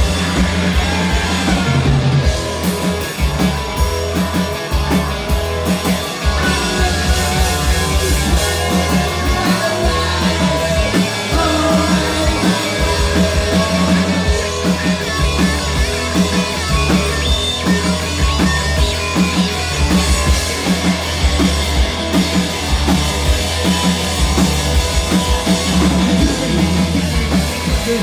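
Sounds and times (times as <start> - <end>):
distorted electric guitar: 0.0 - 28.0
drums driving beat: 0.0 - 28.0.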